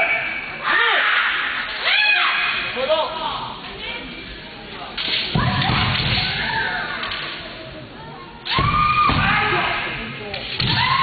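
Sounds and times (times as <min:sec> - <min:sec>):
loud shouts in echoing hall: 0:00.0 - 0:03.2, 0:08.5 - 0:11.0.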